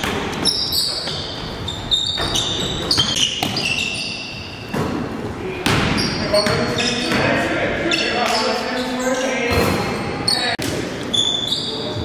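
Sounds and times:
basketball bouncing on gym floor: 0:02.2 - 0:03.7, 0:04.7 - 0:07.4
players' voices: 0:02.4 - 0:12.0.

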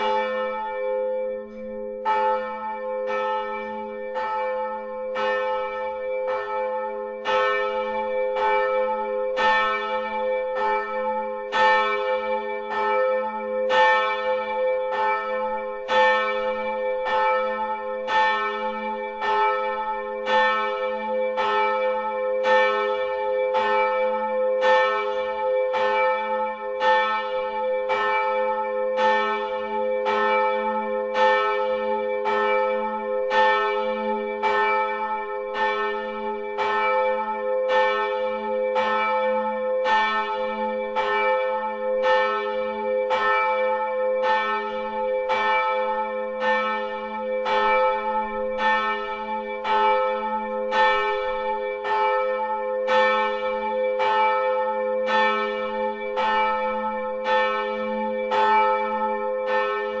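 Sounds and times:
church bell ringing: 0:00.0 - 1:00.0.

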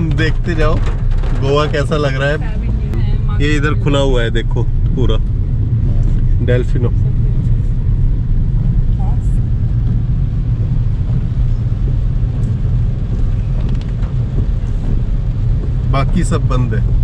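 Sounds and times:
car driving on wet road: 0:00.0 - 0:17.0.

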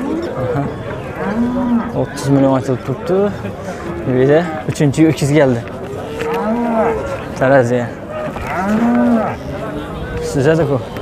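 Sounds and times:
bull mooing: 0:01.2 - 0:02.0, 0:06.0 - 0:07.3, 0:08.0 - 0:10.8.

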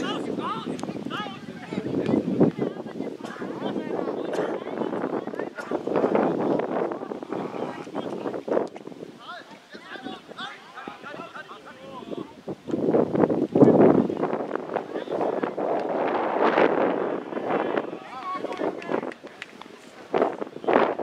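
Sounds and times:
footballers shouting: 0:00.0 - 0:08.3, 0:09.2 - 0:12.5, 0:14.7 - 0:19.8
spectators talking: 0:00.0 - 0:21.0
wind buffeting microphone: 0:00.0 - 0:21.0.

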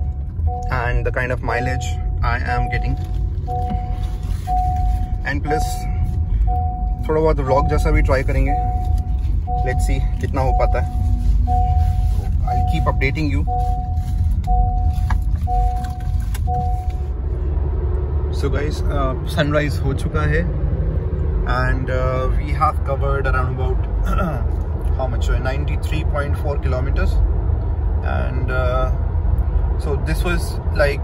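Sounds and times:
car driving drone: 0:00.0 - 0:31.0
seat belt reminder beeps: 0:00.5 - 0:17.1.

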